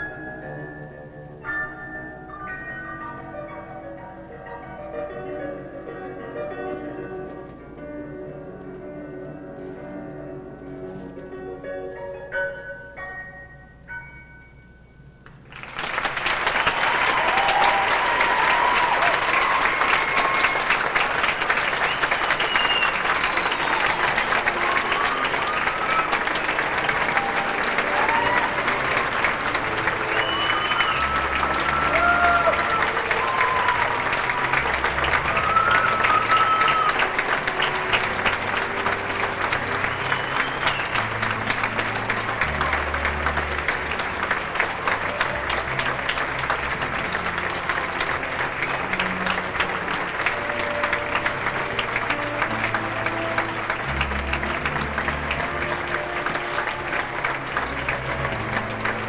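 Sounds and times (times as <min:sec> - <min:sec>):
audience applauding: 0:15.4 - 0:59.0
whoops and cheers: 0:16.6 - 0:20.9, 0:22.3 - 0:29.1, 0:30.0 - 0:37.2.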